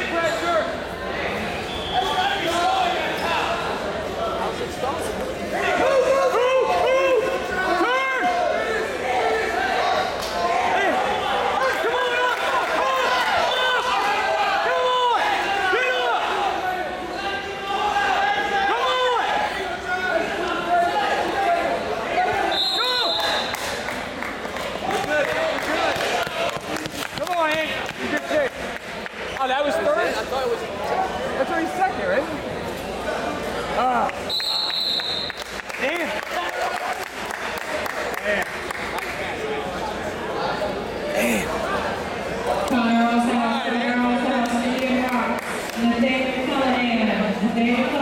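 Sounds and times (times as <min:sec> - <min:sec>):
voices echoing in gym: 0:00.0 - 0:48.0.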